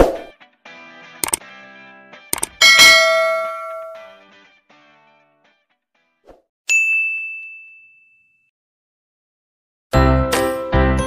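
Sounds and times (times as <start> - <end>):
notification bell ding: 2.4 - 4.1.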